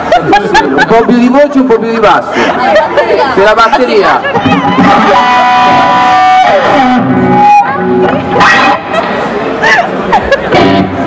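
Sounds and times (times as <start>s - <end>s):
electric guitar: 4.3s - 9.8s, 10.4s - 11.0s
electric bass notes: 4.4s - 9.3s, 10.5s - 11.0s.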